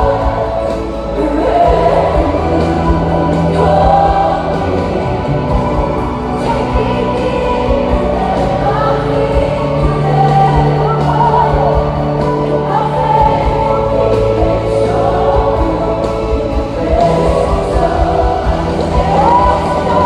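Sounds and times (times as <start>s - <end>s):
drums: 0.0s - 20.0s
lead vocalist singing: 0.0s - 20.0s
many voices singing together: 0.0s - 20.0s.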